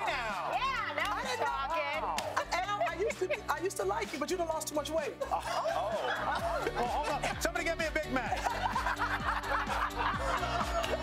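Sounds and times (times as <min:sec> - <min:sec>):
background music with steady beat: 0:00.0 - 0:11.0
group of people laughing: 0:05.1 - 0:11.0.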